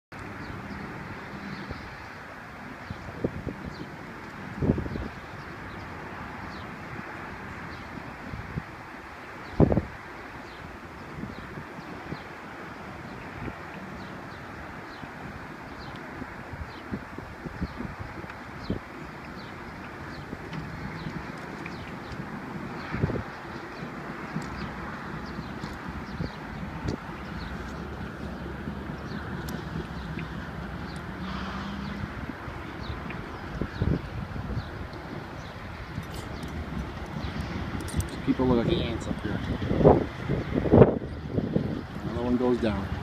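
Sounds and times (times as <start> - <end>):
distant traffic hum: 0.1 - 43.0
wind buffeting microphone: 0.1 - 43.0.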